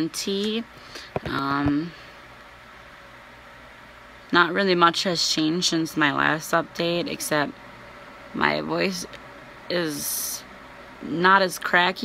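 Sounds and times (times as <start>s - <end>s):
faint steady hum: 0.0s - 12.0s
room tone hiss: 0.0s - 12.0s.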